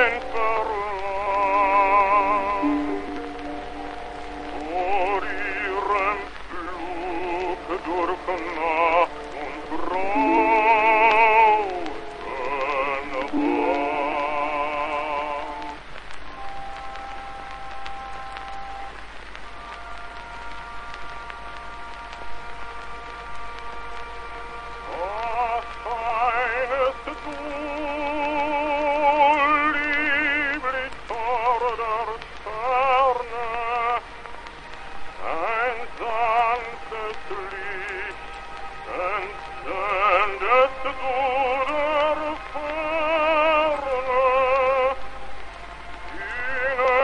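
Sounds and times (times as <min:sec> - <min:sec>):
orchestra accompaniment: 0:00.0 - 0:17.0
baritone singing: 0:00.0 - 0:18.9, 0:19.5 - 0:47.0
orchestral accompaniment: 0:00.0 - 0:47.0
record surface hiss and crackles: 0:00.0 - 0:47.0.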